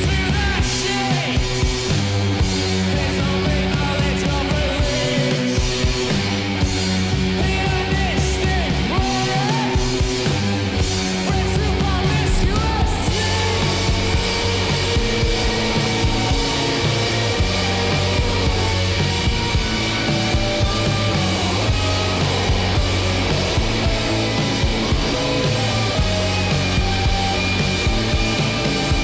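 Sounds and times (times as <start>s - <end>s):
punk band playing: 0.0s - 29.0s
slide guitar gliding: 13.0s - 29.0s.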